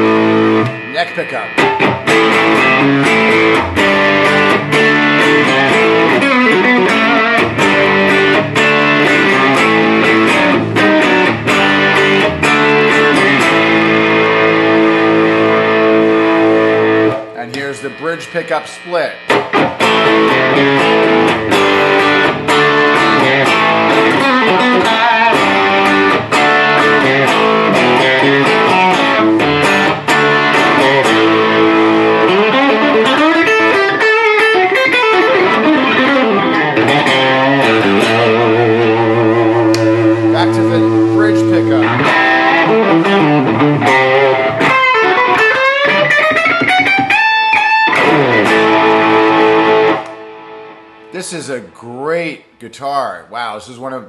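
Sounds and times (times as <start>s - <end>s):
overdriven electric guitar: 0.0s - 51.8s.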